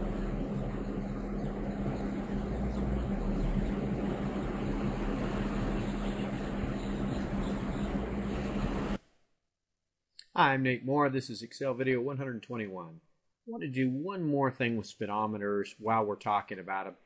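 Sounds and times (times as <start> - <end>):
low steady hum: 0.0 - 9.0.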